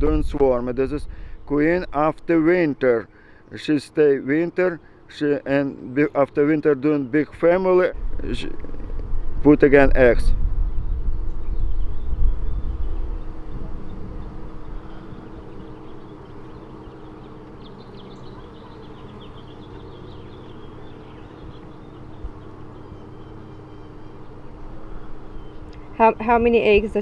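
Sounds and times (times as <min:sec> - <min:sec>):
bees humming: 0:00.7 - 0:09.8, 0:10.6 - 0:27.0.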